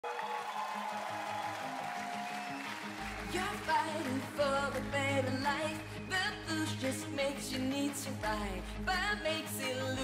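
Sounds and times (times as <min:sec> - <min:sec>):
pop-rock band playing: 0:02.2 - 0:10.0.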